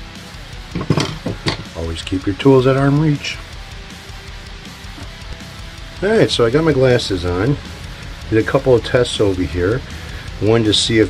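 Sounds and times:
metal tools clinking on workbench: 0.7s - 1.8s.

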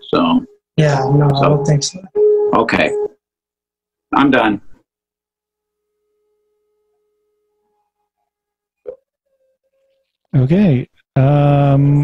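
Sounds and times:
faint steady tone: 5.2s - 10.2s.

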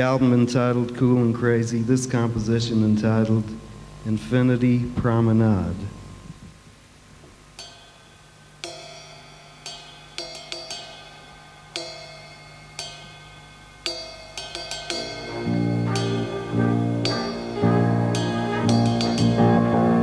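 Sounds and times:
cymbal strikes: 7.4s - 20.0s
big band jazz: 15.0s - 20.0s.

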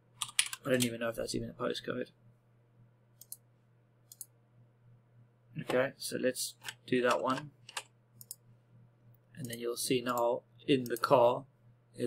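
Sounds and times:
low steady hum: 0.0s - 12.0s
computer mouse clicks: 0.2s - 0.9s, 3.2s - 3.4s, 4.1s - 4.3s, 6.6s - 8.4s.

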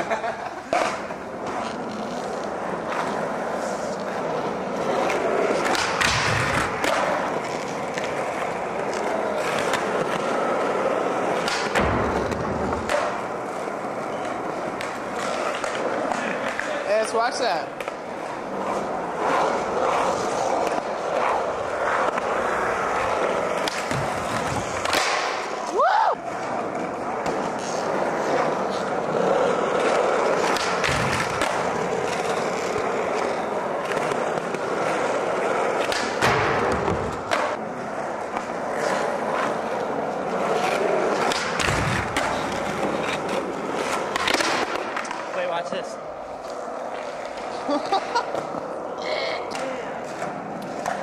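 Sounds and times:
skateboard wheels rolling: 0.0s - 51.0s
skateboard clacks and thuds: 4.9s - 10.3s, 22.0s - 25.6s, 29.1s - 39.5s, 40.4s - 45.4s.

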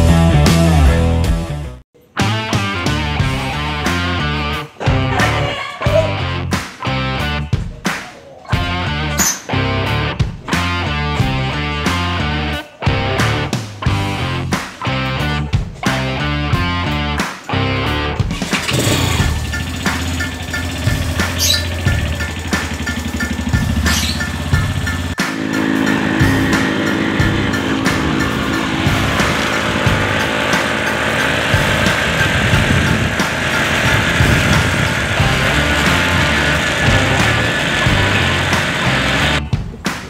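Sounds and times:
rock music: 0.0s - 40.0s
motorcycle engine running: 18.2s - 39.5s.

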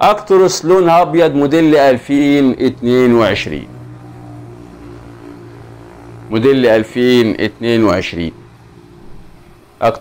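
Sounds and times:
low motor hum: 1.4s - 10.0s.

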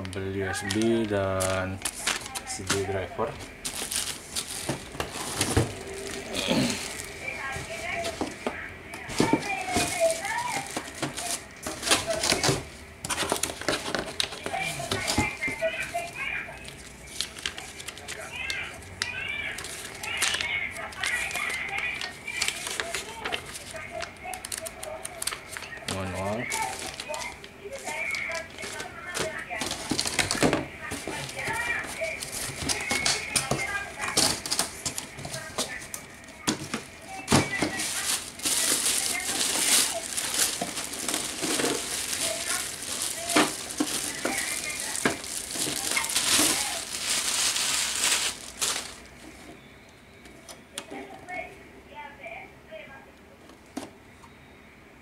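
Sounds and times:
paper rustling: 0.0s - 49.6s
plastic wrapping crinkling: 0.0s - 49.6s.

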